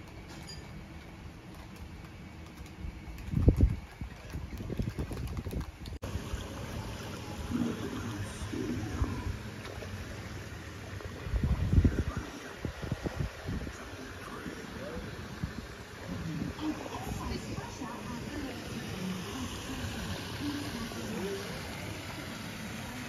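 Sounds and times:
wind buffeting microphone: 0:02.9 - 0:06.0, 0:11.0 - 0:14.4.

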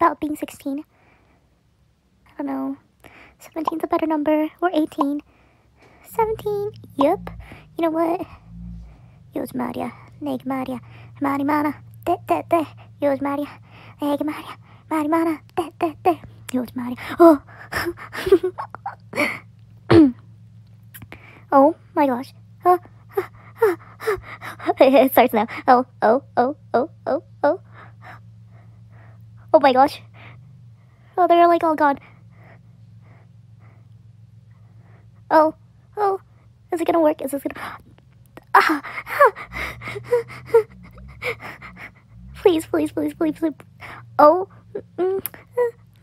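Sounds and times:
woman gasping: 0:38.6 - 0:42.4.

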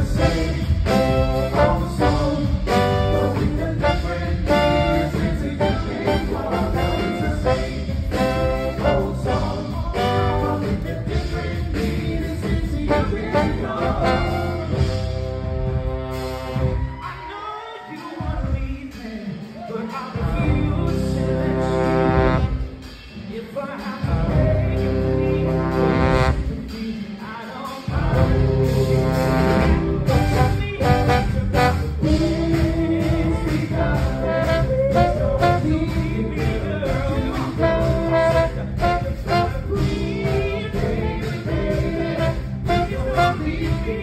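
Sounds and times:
trombone: 0:00.0 - 0:16.9, 0:20.7 - 0:23.0, 0:24.3 - 0:26.8, 0:28.0 - 0:44.0
live band playing: 0:00.0 - 0:44.0
trombone holding long note: 0:21.4 - 0:22.7.

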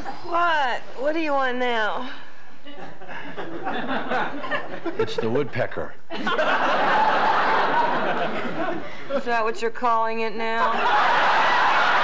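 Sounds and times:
people laughing: 0:02.6 - 0:09.2, 0:10.6 - 0:12.0.

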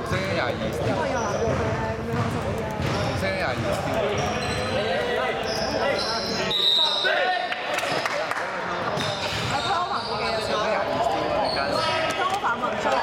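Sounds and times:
basketball bouncing on wooden floor: 0:00.2 - 0:03.9
babble of voices: 0:07.4 - 0:13.0.

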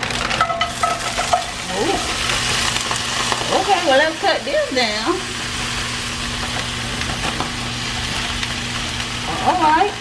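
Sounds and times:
food sizzling in a skillet: 0:00.0 - 0:10.0.

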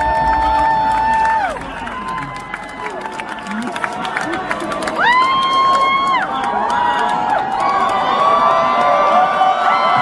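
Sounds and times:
large audience cheering: 0:00.0 - 0:10.0.

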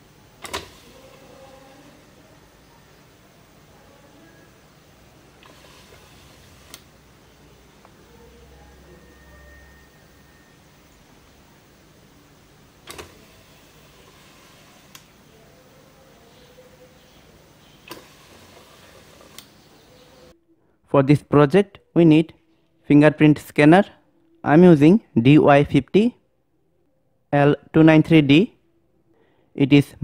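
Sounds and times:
faint room hiss: 0:00.0 - 0:30.0
small motor whirring: 0:05.4 - 0:06.9, 0:12.9 - 0:15.2, 0:17.8 - 0:19.6.

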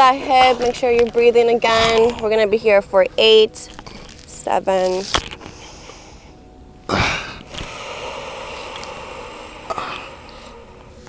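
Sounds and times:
person breathing close to microphone: 0:05.4 - 0:11.0.

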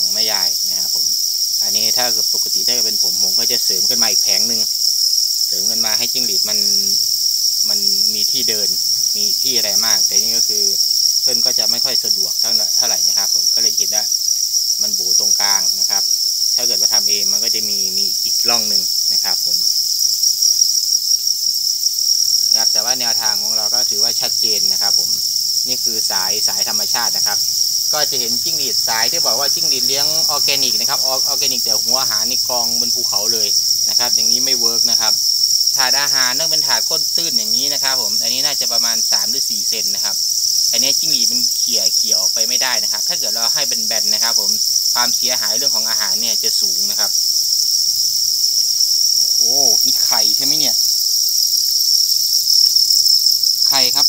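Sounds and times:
crickets chirping chorus: 0:00.0 - 0:54.0.

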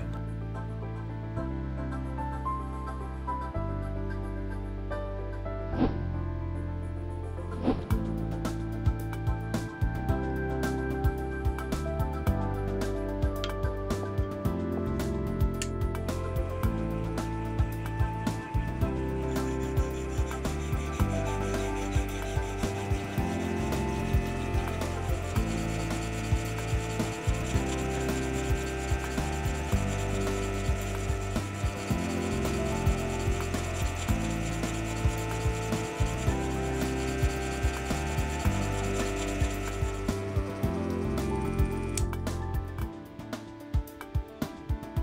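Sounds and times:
file rasping on brass: 0:18.3 - 0:40.6.

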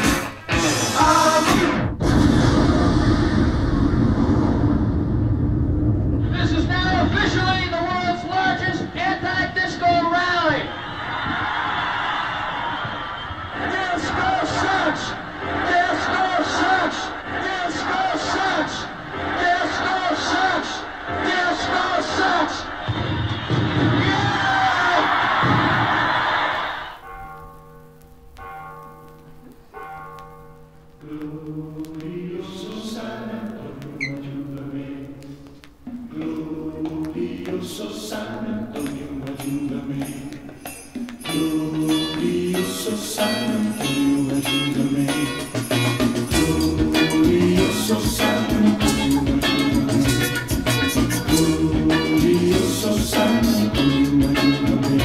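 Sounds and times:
recorded music over speakers: 0:00.0 - 0:55.0
explosion rumble: 0:01.5 - 0:09.9.

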